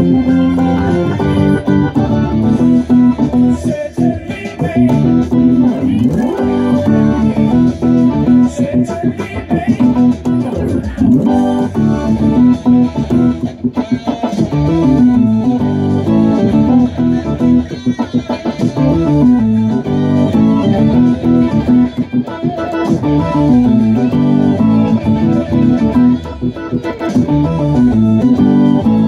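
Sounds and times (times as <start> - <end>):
organ playing chords: 0.0 - 8.8, 9.4 - 29.0
hard rock band music: 0.0 - 29.0.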